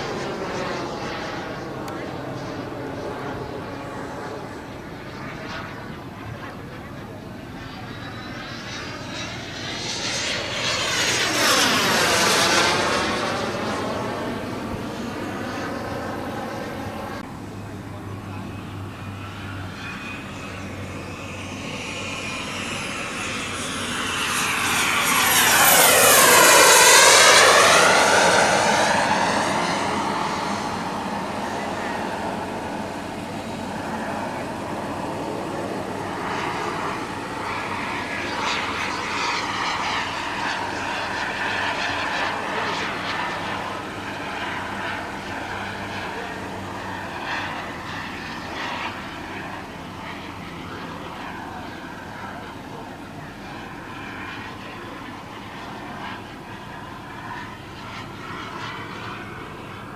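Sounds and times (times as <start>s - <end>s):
model jet turbine whine: 0.0s - 59.9s.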